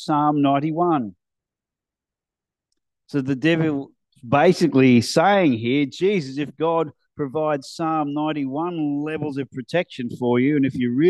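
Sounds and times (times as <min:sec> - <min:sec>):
man speaking: 0:00.0 - 0:01.2, 0:03.1 - 0:11.0.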